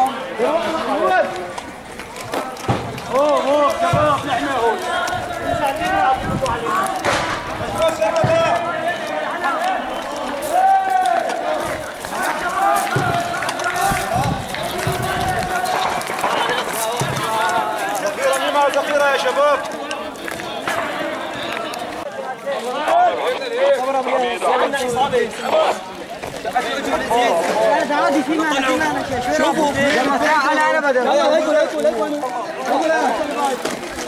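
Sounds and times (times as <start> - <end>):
footsteps on dirt: 0.0 - 34.0
man's voice: 2.3 - 34.0
men shouting: 7.6 - 19.4.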